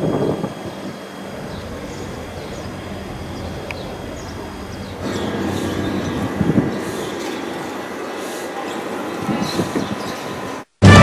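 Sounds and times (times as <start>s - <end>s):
street noise: 0.0s - 11.0s
low rumble: 1.2s - 6.8s.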